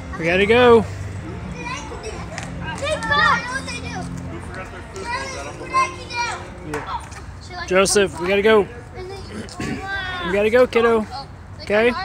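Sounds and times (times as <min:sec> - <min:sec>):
boys calling and chattering: 0:00.0 - 0:12.0.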